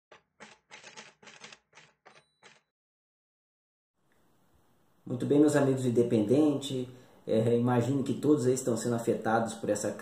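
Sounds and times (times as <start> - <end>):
typewriter key clatter: 0.1 - 2.6.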